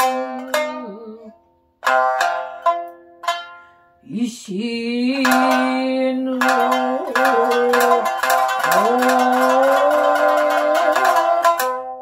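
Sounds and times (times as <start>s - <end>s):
woman singing long held notes: 0.0s - 1.4s, 4.0s - 11.8s
shamisen plucked: 0.0s - 12.0s.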